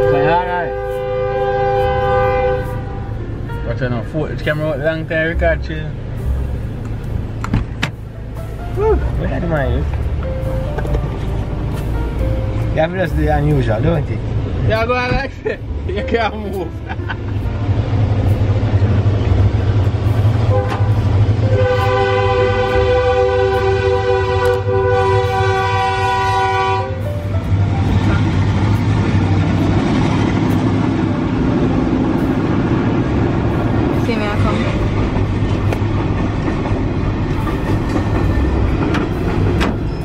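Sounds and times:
train horn blast: 0:00.0 - 0:03.3, 0:20.1 - 0:28.8
train cars rumbling over crossing: 0:00.0 - 0:40.0.

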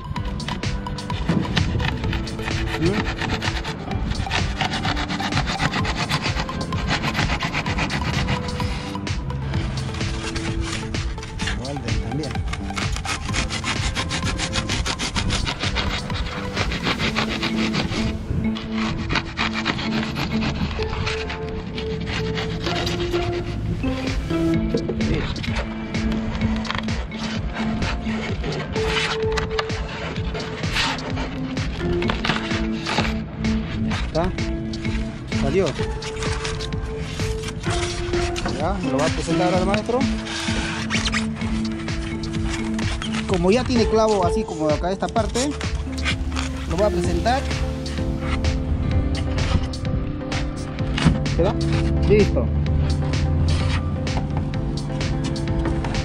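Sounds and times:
background music: 0:00.0 - 0:56.0
blade sawing foam block: 0:00.0 - 0:56.0.

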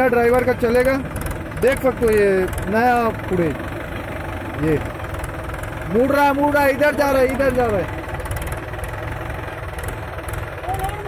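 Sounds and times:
tractor diesel engine idling: 0:00.0 - 0:11.0.

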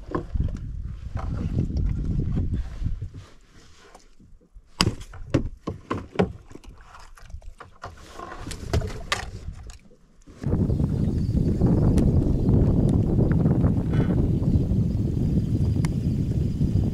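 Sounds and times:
rustling and rubbing: 0:02.2 - 0:04.4.

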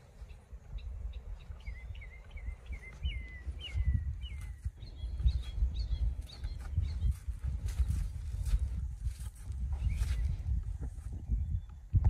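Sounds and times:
hoofbeats on sand: 0:02.6 - 0:11.3.

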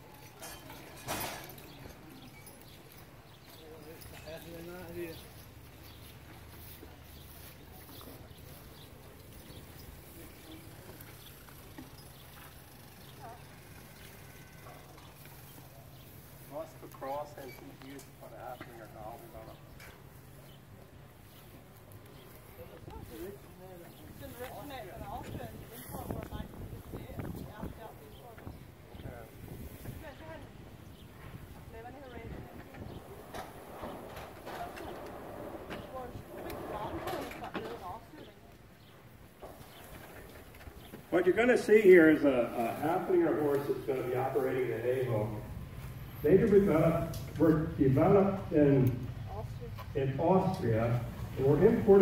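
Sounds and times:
faint horse hooves clopping: 0:00.0 - 0:52.0
people talking indistinctly: 0:40.9 - 0:52.0.

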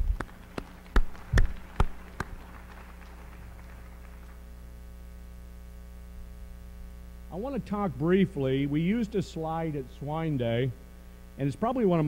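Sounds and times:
hand claps: 0:00.0 - 0:04.5
electrical hum: 0:00.0 - 0:12.0
low thumps on microphone: 0:01.0 - 0:02.0.

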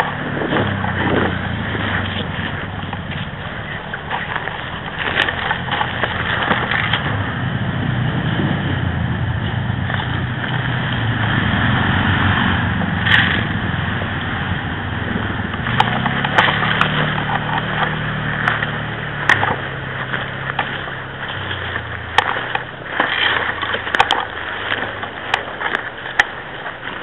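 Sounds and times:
rustling and scraping on bark: 0:00.0 - 0:27.0.

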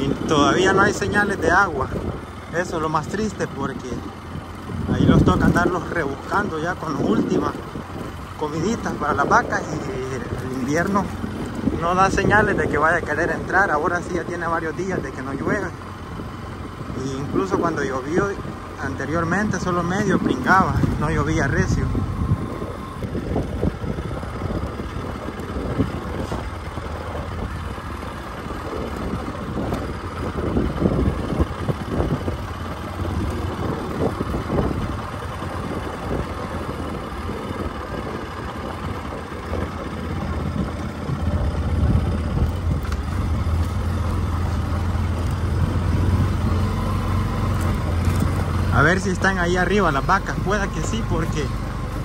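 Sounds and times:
ride noise on dirt road: 0:00.0 - 0:52.0
vehicle engine rumble: 0:00.0 - 0:52.0.

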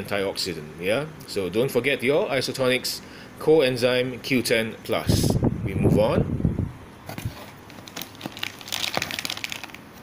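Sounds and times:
cardboard box rustling: 0:07.1 - 0:09.6
plastic packaging crinkling: 0:07.1 - 0:10.0.

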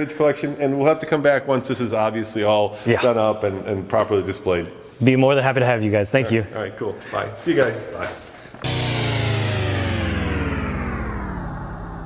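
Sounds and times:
synthesizer tone sliding down: 0:08.6 - 0:12.0.

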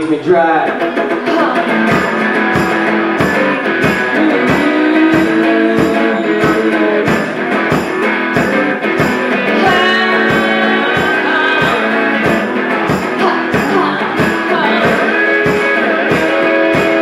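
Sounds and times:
guitars strummed and picked: 0:00.0 - 0:17.0
steady beat: 0:00.7 - 0:17.0.

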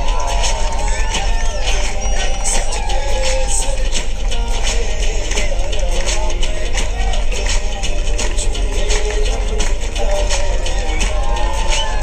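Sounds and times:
bass-heavy dance beat: 0:00.0 - 0:12.0.

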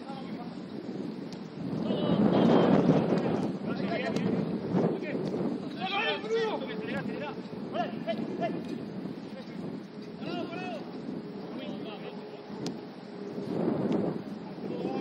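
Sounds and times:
wind on microphone: 0:00.0 - 0:15.0
players shouting: 0:05.0 - 0:12.6.

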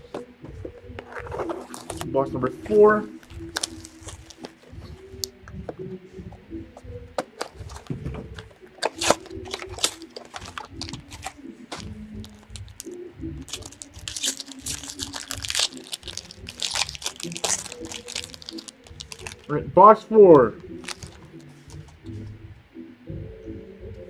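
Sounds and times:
cardboard box opening: 0:01.0 - 0:02.1, 0:07.2 - 0:19.5, 0:20.8 - 0:21.9
plastic wrap crinkling and tearing: 0:01.3 - 0:02.2, 0:03.2 - 0:05.3, 0:07.3 - 0:19.5, 0:20.7 - 0:21.9.

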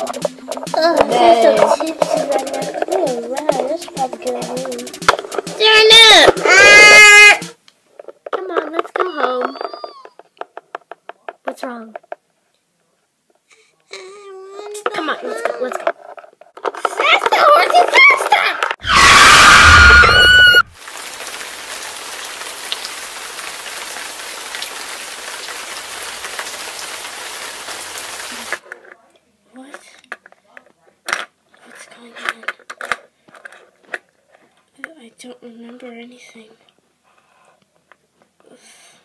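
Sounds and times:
toys clicking: 0:00.0 - 0:06.5, 0:08.0 - 0:12.2
voices: 0:00.0 - 0:07.6
toy car crash screech: 0:05.7 - 0:07.5, 0:17.5 - 0:20.7
rain-like hiss: 0:18.8 - 0:28.6.

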